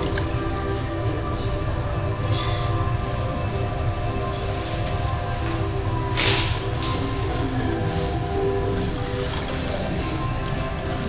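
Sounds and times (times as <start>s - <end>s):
steady humming tones: 0.0s - 11.0s.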